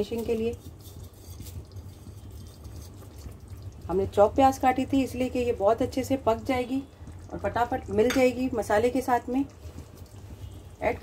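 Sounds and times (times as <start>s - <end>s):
gravy simmering and bubbling: 0.0s - 11.0s.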